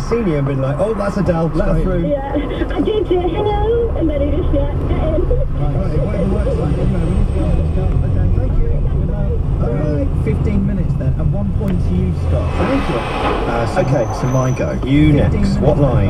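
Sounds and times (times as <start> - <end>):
people talking indistinctly: 0.0 - 16.0.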